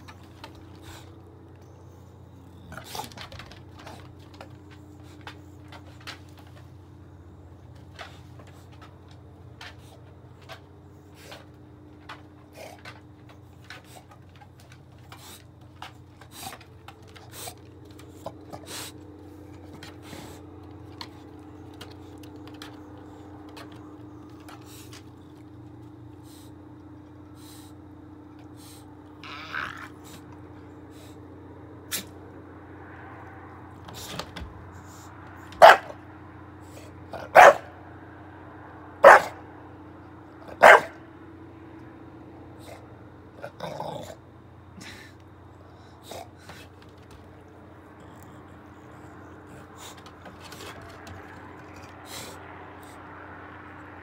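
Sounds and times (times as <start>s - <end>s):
dog scuffing on wooden deck: 0.0s - 27.6s, 33.8s - 36.0s, 49.4s - 52.4s
steady low hum: 0.0s - 54.0s
dog barking: 35.6s - 36.0s, 37.1s - 37.8s, 39.0s - 39.5s, 40.5s - 41.0s.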